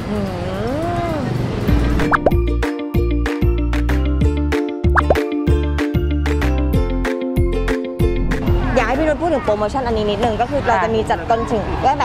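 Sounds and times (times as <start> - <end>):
woman humming mmm: 0.0 - 1.1
bouncy music: 1.7 - 9.1
rising plop sound effects: 2.0 - 2.4, 4.9 - 5.2.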